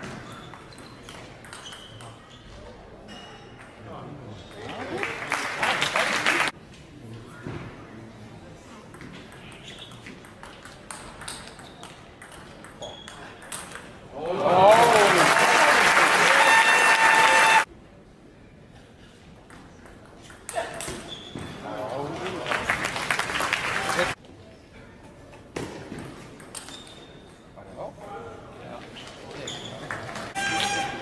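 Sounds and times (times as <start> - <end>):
crowd cheering and applause: 14.5 - 17.7.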